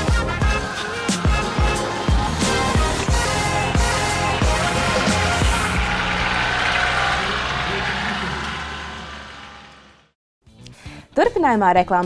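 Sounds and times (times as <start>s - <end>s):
vehicle engine running: 0.0s - 10.2s
voices of onlookers: 0.6s - 9.7s.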